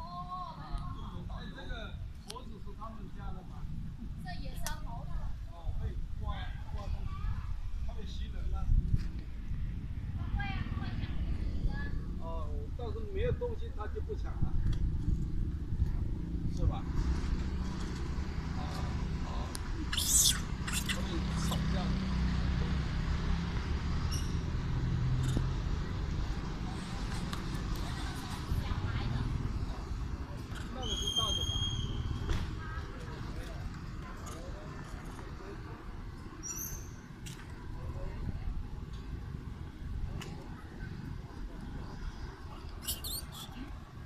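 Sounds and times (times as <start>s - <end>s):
monkey high-pitched squeaks: 19.8s - 21.7s, 24.1s - 24.5s, 30.8s - 32.2s, 36.4s - 37.0s, 42.8s - 43.7s.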